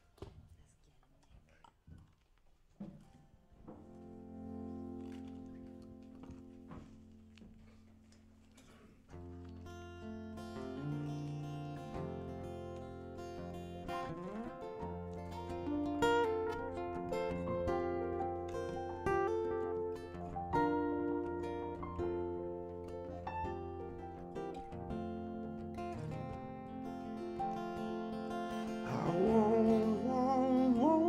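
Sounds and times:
solo guitar playing: 3.5s - 31.0s.

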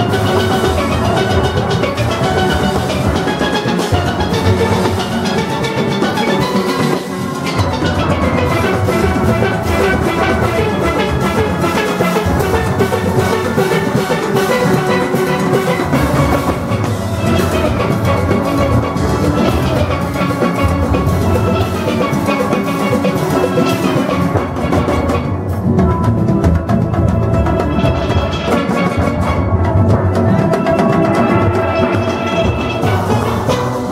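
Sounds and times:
steel orchestra playing: 0.0s - 33.9s.

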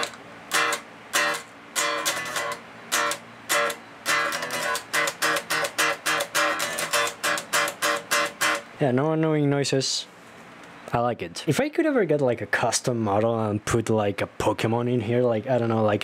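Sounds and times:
muted electric guitar strums: 0.0s - 8.8s.

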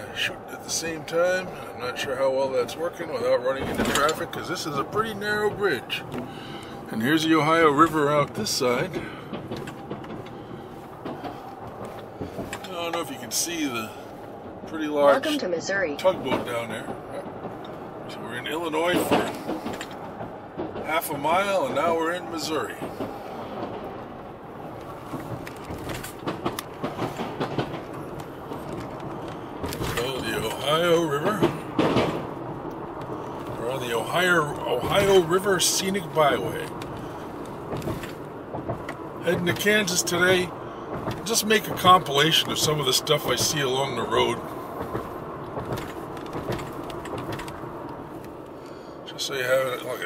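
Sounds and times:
car road noise inside cabin: 0.0s - 50.0s.

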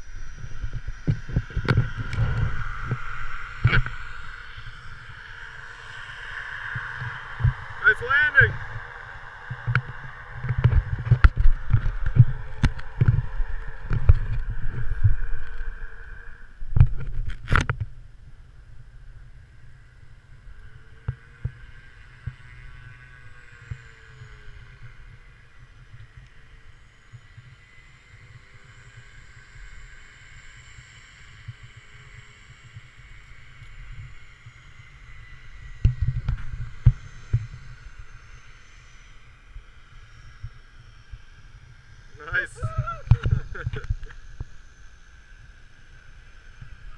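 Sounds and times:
wind buffeting microphone: 0.0s - 18.2s
faint steady tones: 0.0s - 46.9s.

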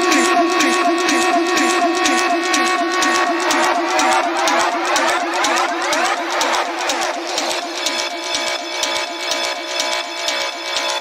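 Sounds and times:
electronic dance music: 0.0s - 11.0s.

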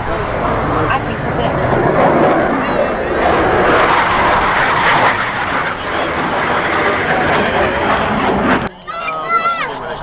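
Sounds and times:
jet engine flying past: 0.0s - 10.0s.

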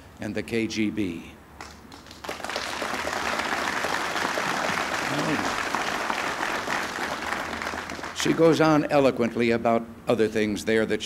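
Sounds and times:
audience applauding: 1.6s - 8.6s.

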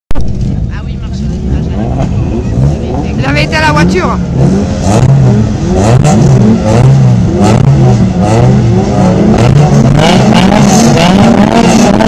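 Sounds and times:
race car engines revving: 0.2s - 12.0s.

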